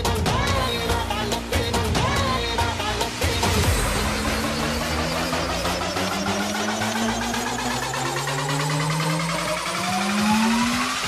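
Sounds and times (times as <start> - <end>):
rising synth sweep: 2.0 - 11.0
pulsing electronic texture: 2.2 - 11.0.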